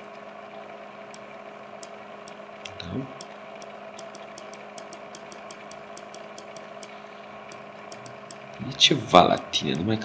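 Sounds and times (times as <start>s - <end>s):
electrical hum and hiss: 0.0s - 10.0s
faint short clicks: 1.8s - 8.4s.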